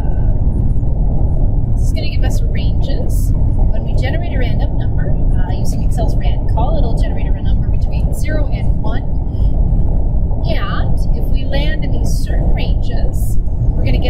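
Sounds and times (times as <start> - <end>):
loud low rumble: 0.0 - 14.0.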